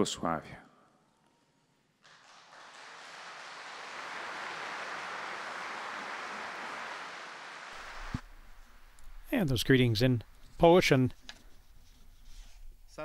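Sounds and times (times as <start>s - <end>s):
large crowd applauding: 2.0s - 8.2s.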